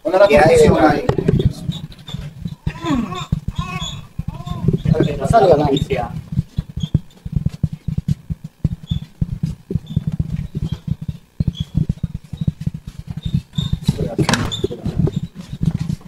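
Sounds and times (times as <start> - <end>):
phone handling thumps and rubbing: 0.6 - 16.0.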